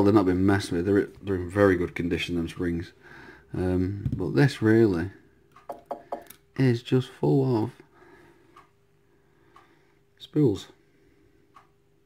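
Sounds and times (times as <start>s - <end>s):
low steady hum: 0.0s - 12.0s
faint ticks: 11.5s - 11.8s.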